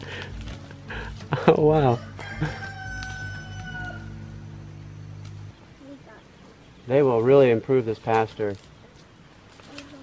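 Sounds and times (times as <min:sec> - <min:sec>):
steady low hum: 0:00.0 - 0:06.9
rooster crowing: 0:01.9 - 0:05.1.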